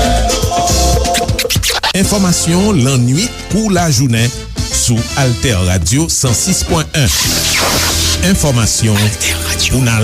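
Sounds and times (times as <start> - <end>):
turntable scratch: 1.2 - 2.0, 7.0 - 9.2.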